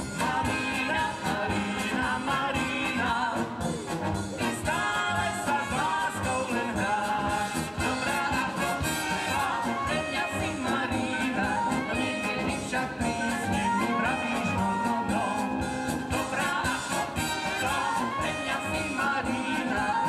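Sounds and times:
drum kit: 0.0 - 20.0
trumpets and saxophones: 0.0 - 20.0
tuba: 0.0 - 20.0.

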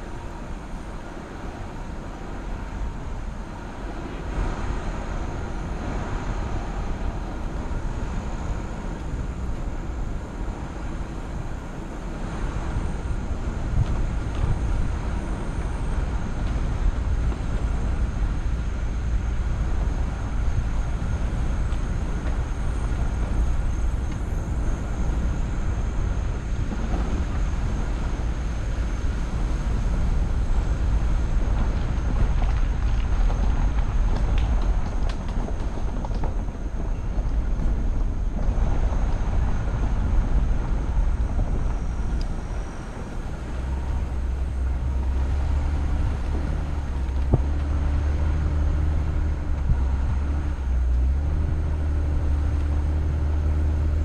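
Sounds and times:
faint high whine: 0.0 - 54.0
vehicle engine rumble: 0.0 - 54.0.

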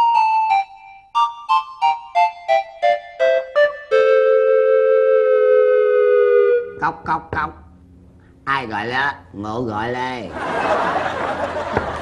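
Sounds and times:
held electronic note: 2.9 - 7.4
knocks on wooden door: 11.7 - 12.0.

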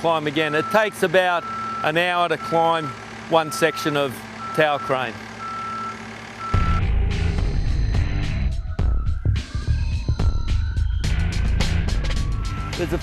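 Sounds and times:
reversing alarm beeping: 0.4 - 13.0
loud low rumble: 6.6 - 12.6.

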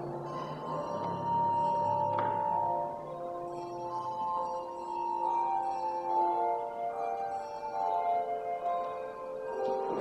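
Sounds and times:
church bells playing a slow tune: 0.0 - 10.0.

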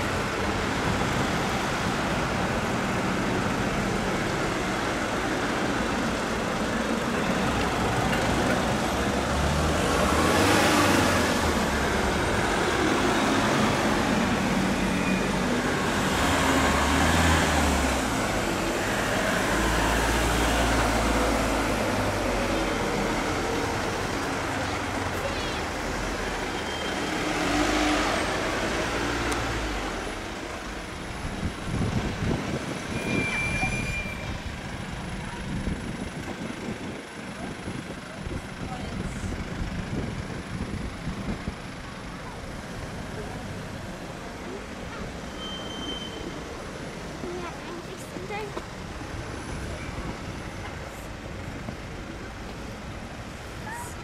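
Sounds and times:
vans driving past: 0.0 - 54.0.

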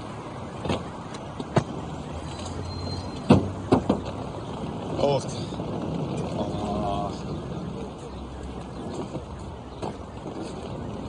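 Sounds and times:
street traffic hum: 0.0 - 11.0
luggage knocks and thumps: 3.2 - 4.9.

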